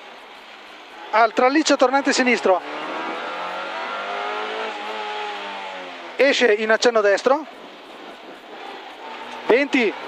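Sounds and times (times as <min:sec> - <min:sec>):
rally car engine from inside cabin: 0:01.7 - 0:06.2.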